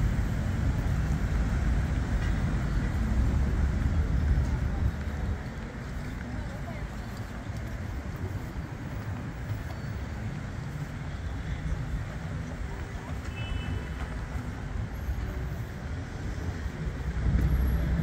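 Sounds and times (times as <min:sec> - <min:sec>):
distant traffic rumble: 0:00.0 - 0:18.0.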